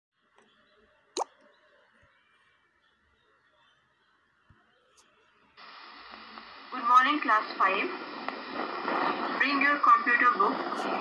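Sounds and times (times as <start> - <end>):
faint steady hiss: 5.0 - 8.9.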